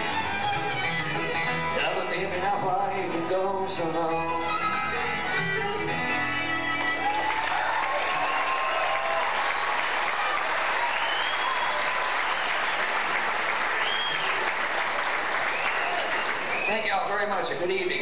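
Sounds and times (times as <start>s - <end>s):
audience applauding and cheering: 6.6s - 17.5s.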